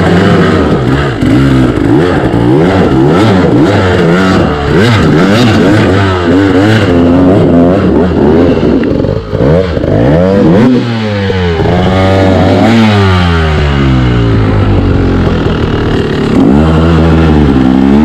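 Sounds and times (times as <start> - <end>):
dirt bike engine revving: 0.0 - 18.0
low engine drone: 0.0 - 18.0.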